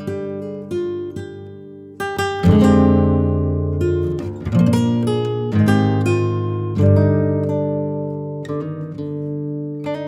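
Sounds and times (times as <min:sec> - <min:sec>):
strummed acoustic guitar chords: 0:00.0 - 0:10.0.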